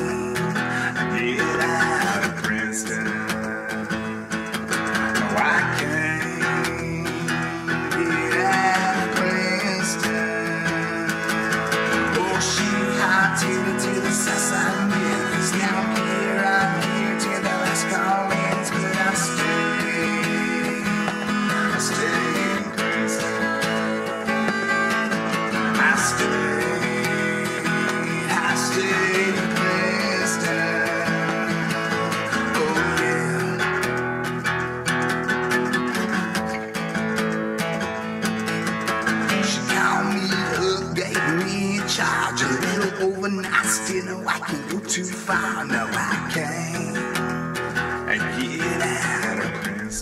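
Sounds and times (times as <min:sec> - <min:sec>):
acoustic guitar strumming: 0:00.0 - 0:50.0.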